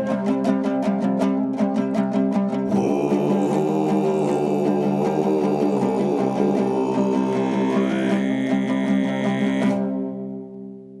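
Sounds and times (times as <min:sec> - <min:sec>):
plucked two-stringed lute: 0:00.0 - 0:10.9
throat singing drone: 0:02.7 - 0:10.5.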